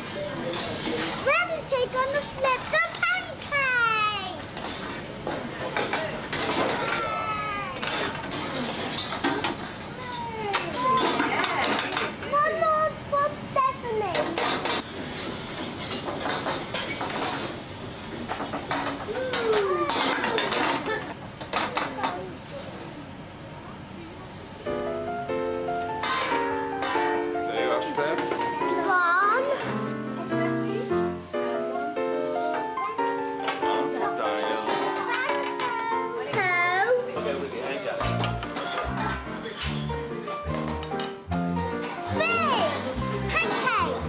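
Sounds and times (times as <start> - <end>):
metal pan and plates clinking: 10.6 - 12.2, 18.7 - 22.2, 26.0 - 27.2, 34.5 - 35.9, 37.9 - 41.2, 43.2 - 44.0.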